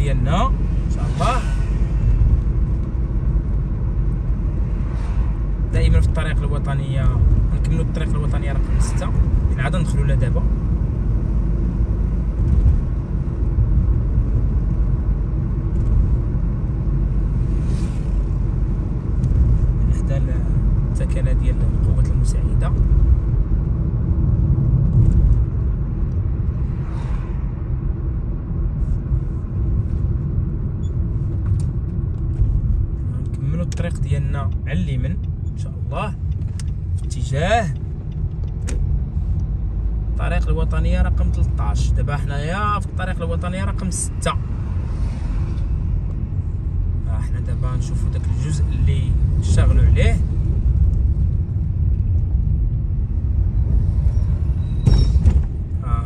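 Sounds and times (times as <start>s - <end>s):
car driving on road: 0.0s - 56.0s.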